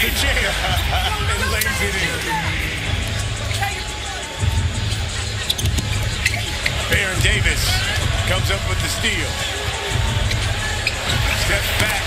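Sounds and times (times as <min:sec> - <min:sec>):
crowd noise: 0:00.0 - 0:12.0
pa music with pulsing bass: 0:00.0 - 0:12.0
sneaker squeaks and ball knocks: 0:05.4 - 0:07.0, 0:10.2 - 0:12.0.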